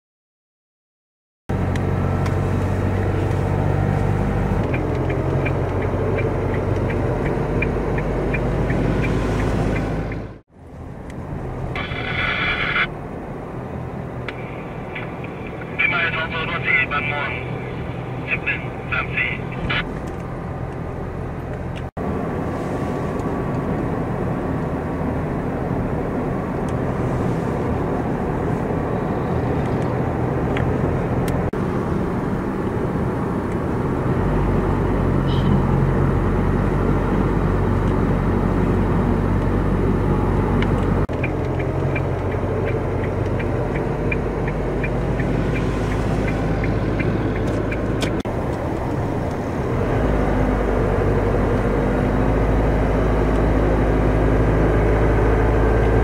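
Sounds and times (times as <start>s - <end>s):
car engine hum: 1.5s - 56.0s.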